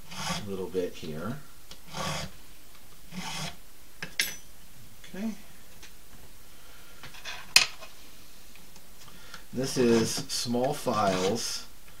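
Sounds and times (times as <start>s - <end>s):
file rasping on bone: 0.0s - 0.5s, 1.9s - 2.3s, 3.1s - 3.6s, 11.0s - 11.5s.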